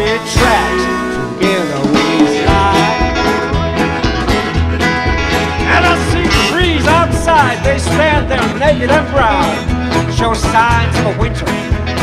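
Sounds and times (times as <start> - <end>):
blues band playing: 0.0 - 12.0
resonator guitar: 0.0 - 12.0.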